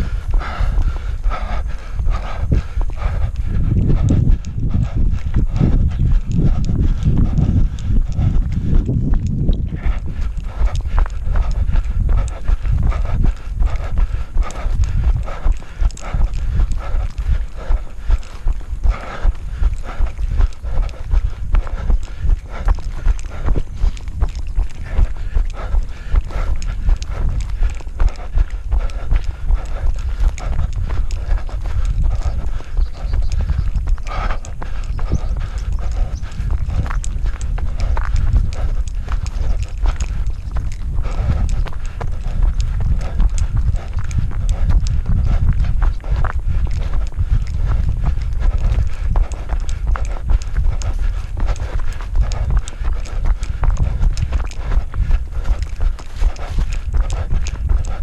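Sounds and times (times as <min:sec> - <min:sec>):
low rumble: 0:00.0 - 0:58.0
running footsteps on dirt trail: 0:00.0 - 0:58.0.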